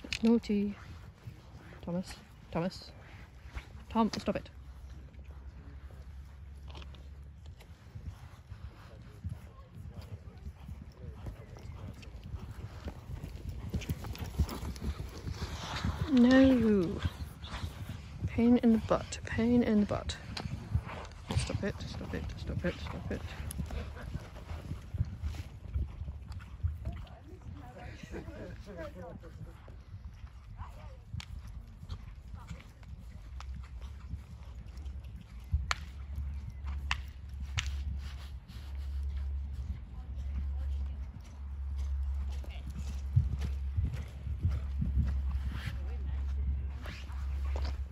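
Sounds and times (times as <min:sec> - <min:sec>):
horse hoofbeats on sand: 0:00.0 - 0:47.9
steady low rumble: 0:00.0 - 0:47.9.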